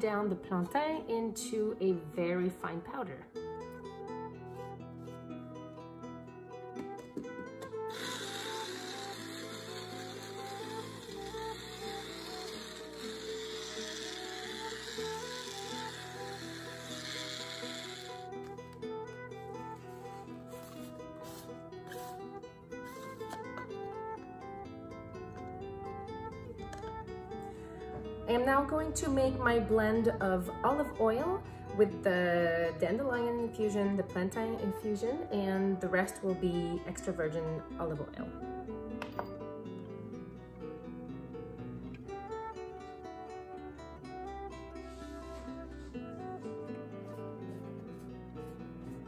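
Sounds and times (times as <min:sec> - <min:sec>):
background music: 0:00.0 - 0:49.0
electric blade grinder running: 0:07.6 - 0:18.8.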